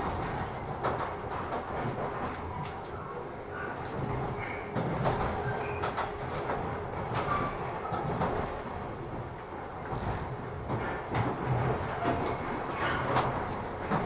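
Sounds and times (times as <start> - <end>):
train wheels rumbling on rails: 0.0 - 14.0
wheels clicking over rail joints: 0.0 - 14.0.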